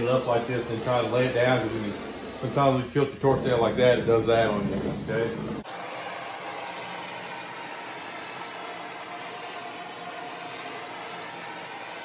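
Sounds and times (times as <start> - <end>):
blowtorch flame hissing: 0.0 - 12.0.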